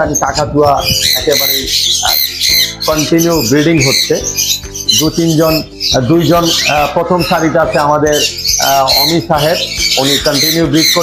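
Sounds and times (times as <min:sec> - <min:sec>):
man talking: 0:00.0 - 0:11.0
parrots squawking and chirping: 0:00.0 - 0:11.0.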